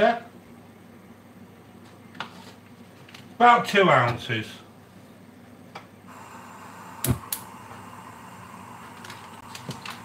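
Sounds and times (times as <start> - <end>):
burning gas hissing: 6.1 - 10.0
gas burner igniter clicks: 6.9 - 7.9.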